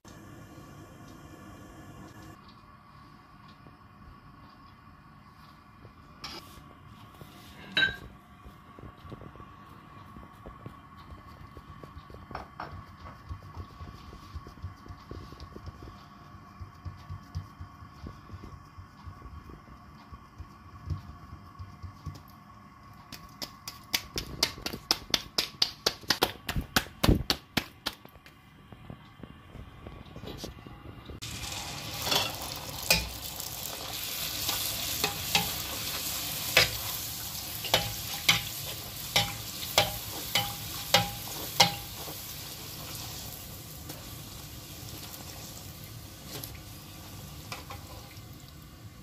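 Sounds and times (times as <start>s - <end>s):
metal spoon clinking on pan: 7.7s - 8.1s, 32.0s - 33.2s, 37.6s - 42.0s
oil sizzling while deep-frying: 10.3s - 24.7s, 31.2s - 49.0s.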